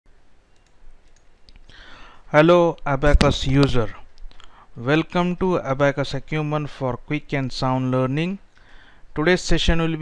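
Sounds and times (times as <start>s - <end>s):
low steady background noise: 0.1s - 10.0s
faint computer clicks: 0.5s - 1.8s.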